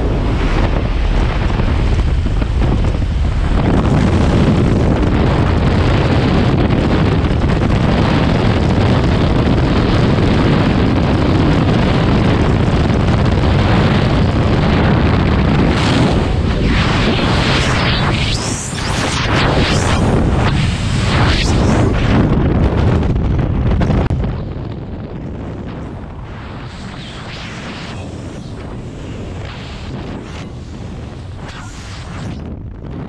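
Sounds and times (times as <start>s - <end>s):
aircraft engine noise: 0.0s - 33.0s
freefall wind: 0.0s - 33.0s
wind buffeting microphone: 0.0s - 33.0s.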